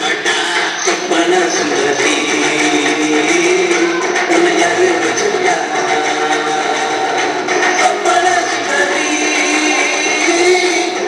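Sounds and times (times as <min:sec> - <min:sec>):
dance music over speakers: 0:00.0 - 0:11.0.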